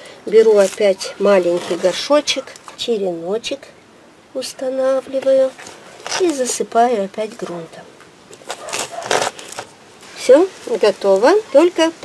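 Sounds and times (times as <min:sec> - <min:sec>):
hands rustling potting soil: 0:00.2 - 0:03.1, 0:04.5 - 0:12.0.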